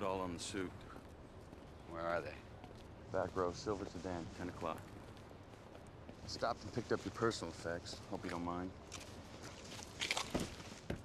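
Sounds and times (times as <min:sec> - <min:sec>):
faint outdoor background: 0:00.0 - 0:11.0
footsteps on pavement: 0:00.7 - 0:11.0.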